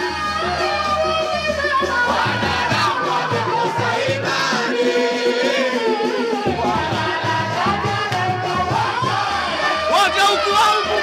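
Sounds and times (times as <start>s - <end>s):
drum beats: 0.0s - 11.0s
male group singing in chorus: 0.0s - 11.0s.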